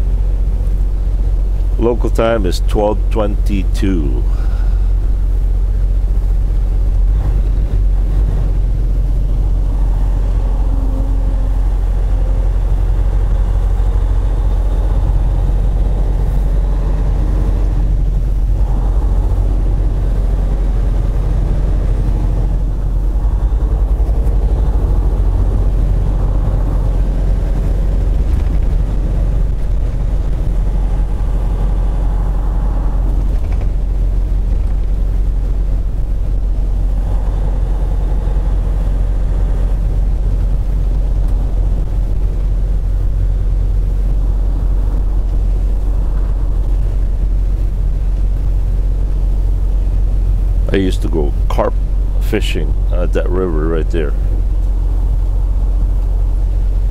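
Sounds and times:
truck diesel engine drone: 0.0s - 56.9s.

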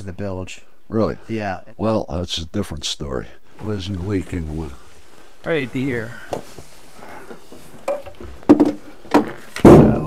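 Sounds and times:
wooden joinery knocks and clatter: 7.4s - 10.0s
wooden panel thump: 7.9s - 10.0s.

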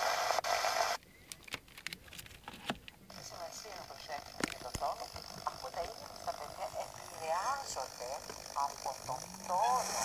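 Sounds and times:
tv static hiss: 0.0s - 1.0s, 3.1s - 10.0s.

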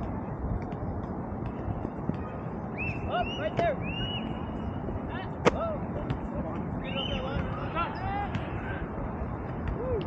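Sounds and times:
steady rushing noise: 0.0s - 10.0s
distant shouts and calls: 2.2s - 4.8s, 6.7s - 10.0s.

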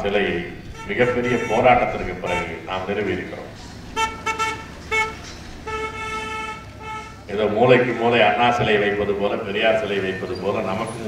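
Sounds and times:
vehicle horn honking: 0.6s - 3.1s, 3.9s - 7.6s.

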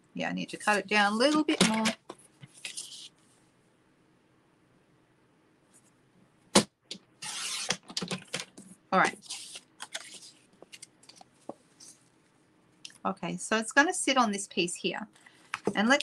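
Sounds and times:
card rustling: 0.7s - 3.2s, 7.2s - 12.0s
blade scraping through card: 7.2s - 7.8s.

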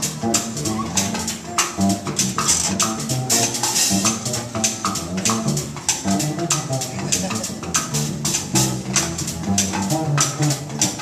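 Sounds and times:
congas: 0.0s - 11.0s
drum kit: 0.0s - 11.0s
upright bass: 0.0s - 11.0s.

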